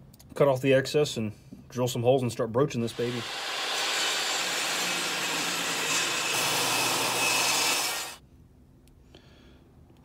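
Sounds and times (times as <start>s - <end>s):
table saw cutting wood: 2.9s - 8.2s.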